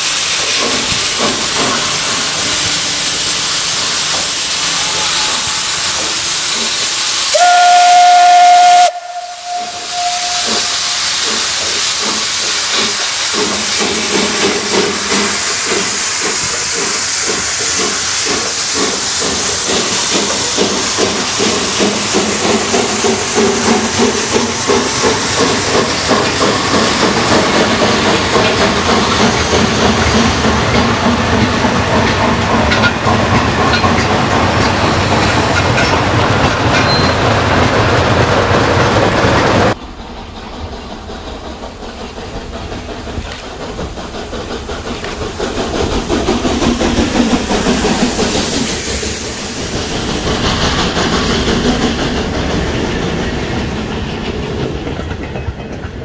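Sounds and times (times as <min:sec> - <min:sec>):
steam locomotive hissing: 0:00.0 - 0:56.0
locomotive exhaust beating: 0:00.4 - 0:55.9
steam whistle blast: 0:07.3 - 0:10.8.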